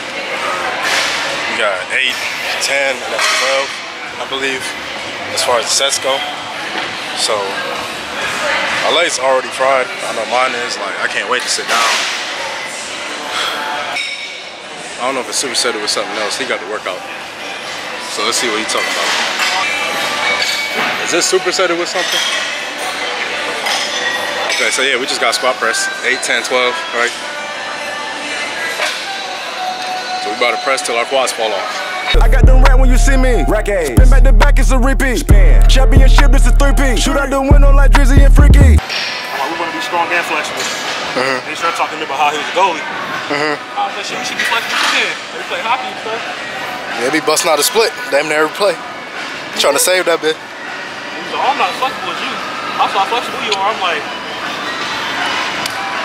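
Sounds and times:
gym hall background noise: 0.0 - 35.6, 38.3 - 56.0.

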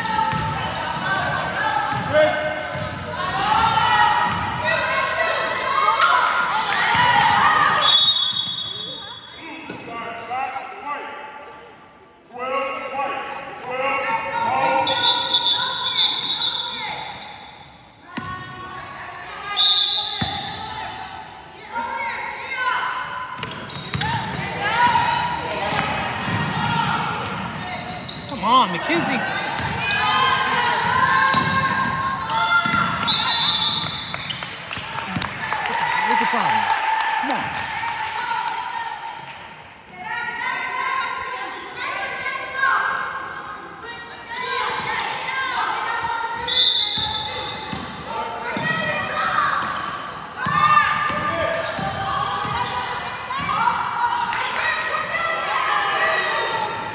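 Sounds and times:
people shouting and talking: 0.0 - 56.9
basketball bouncing: 0.3 - 0.6, 2.7 - 3.0
referee's whistle blasts: 7.7 - 9.4, 14.6 - 17.6, 19.5 - 20.6, 33.0 - 34.4, 46.4 - 47.7.

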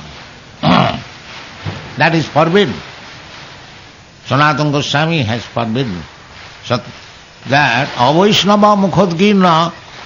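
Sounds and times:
tape hiss: 0.0 - 10.0.

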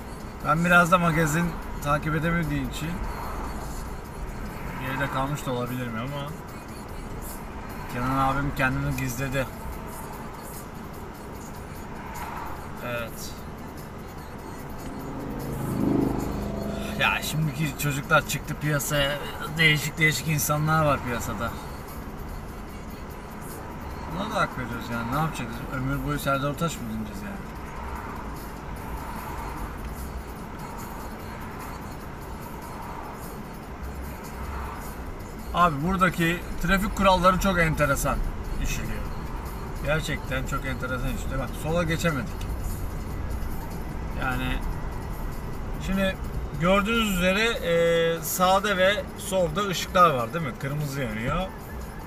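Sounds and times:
car engine rumble: 0.0 - 52.0
faint music: 0.0 - 52.0
passing traffic: 0.0 - 52.0.

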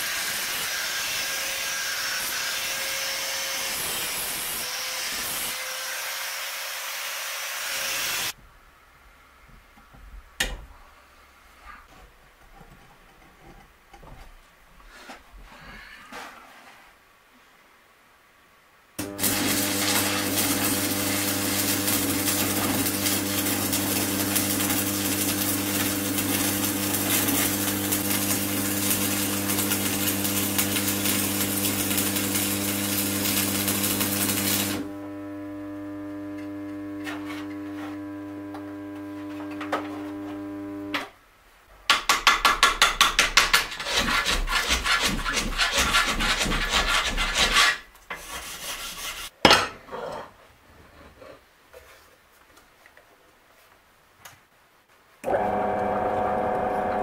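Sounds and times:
arc welding crackling buzz: 19.0 - 41.0.

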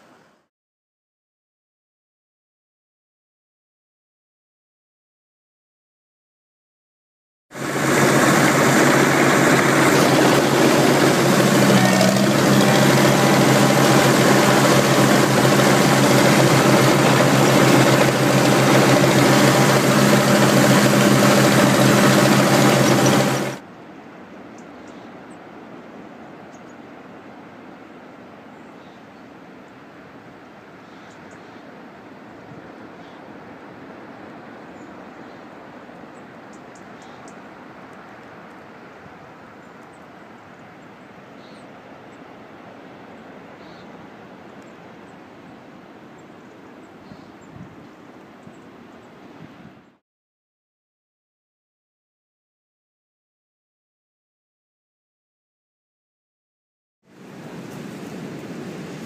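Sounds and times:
engine running steadily: 7.6 - 23.6.

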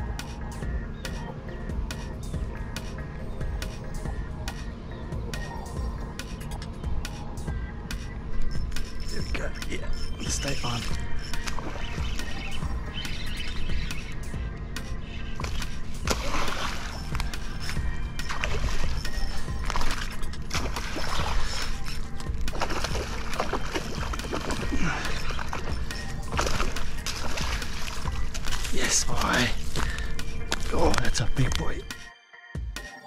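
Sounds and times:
steady low hum: 0.0 - 32.1
fish thrashing and splashing: 15.4 - 31.0.

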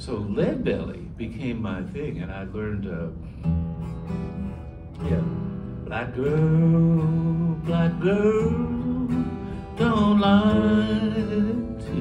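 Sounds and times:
acoustic guitar chord strummed: 1.5 - 12.0.

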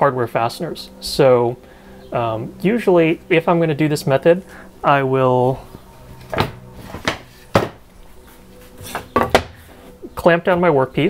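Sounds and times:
wooden pieces knocking on table: 6.3 - 7.8, 8.8 - 9.5.

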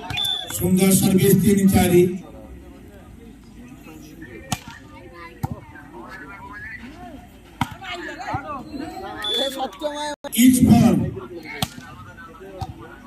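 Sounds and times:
players shouting and chatting: 0.0 - 13.0.

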